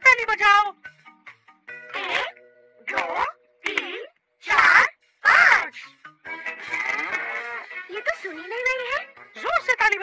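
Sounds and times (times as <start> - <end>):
light background music: 0.0 - 10.0
cartoon animal vocal calls: 1.9 - 3.4, 4.5 - 5.8, 6.6 - 7.7.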